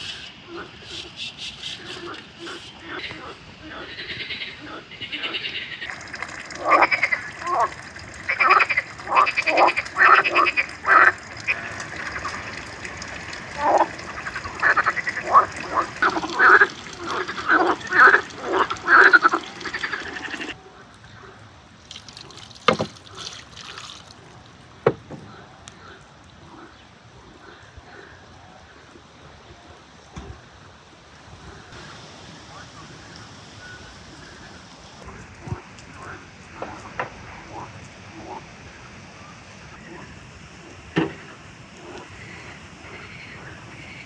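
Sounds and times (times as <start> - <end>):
frogs croaking: 0.0 - 29.2, 31.3 - 44.0.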